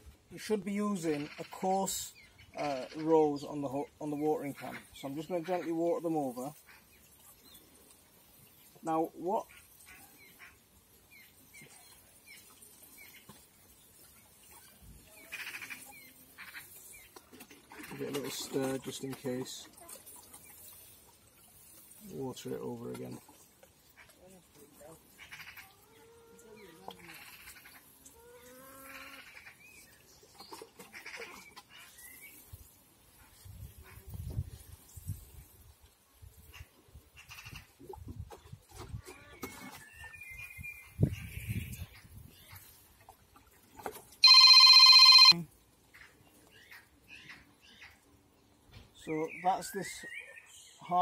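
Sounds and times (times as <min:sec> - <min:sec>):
faint distant calls: 0:44.2 - 0:45.3
loud electronic tone: 0:44.2 - 0:45.4.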